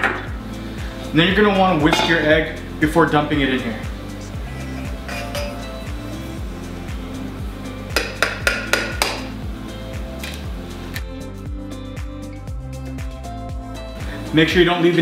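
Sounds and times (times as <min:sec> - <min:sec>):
background music with steady beat: 0:00.0 - 0:15.0
sharp clinks on metal bowl: 0:01.9 - 0:02.3, 0:05.1 - 0:05.7.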